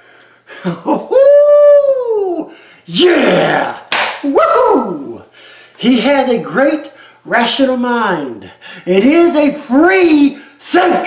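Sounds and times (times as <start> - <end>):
man's falsetto whoop: 0.9 - 2.5.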